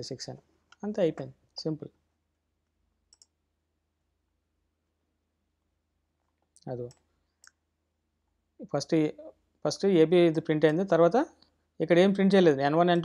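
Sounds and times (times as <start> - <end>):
person speaking: 0.0 - 2.0, 6.6 - 7.0, 8.6 - 13.0
computer mouse click: 3.1 - 3.4.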